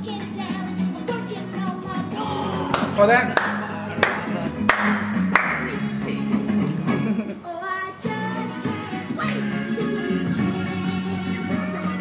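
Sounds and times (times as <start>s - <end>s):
music with steady beat: 0.0s - 7.2s
sharp claps: 2.7s - 5.8s.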